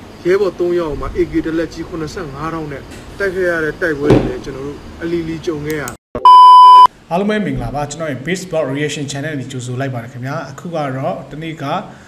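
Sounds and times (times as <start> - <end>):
electronic test-tone beep: 6.2 - 6.9.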